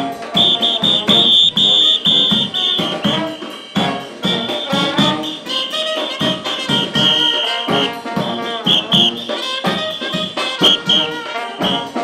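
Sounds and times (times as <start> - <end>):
brass band playing: 0.0 - 12.0
shrill whistle blasts: 0.3 - 12.0.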